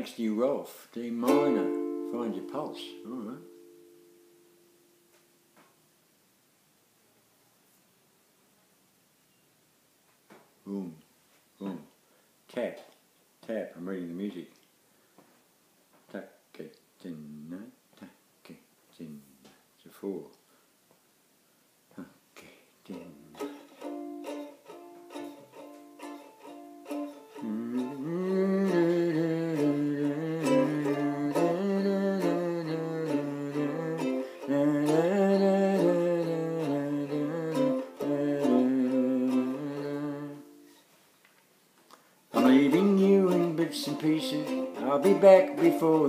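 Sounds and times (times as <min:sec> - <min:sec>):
plucked string instrument: 0:01.1 - 0:04.4, 0:23.2 - 0:40.8, 0:42.3 - 0:46.0
man humming melody: 0:01.3 - 0:03.9, 0:27.0 - 0:40.8, 0:42.4 - 0:46.0.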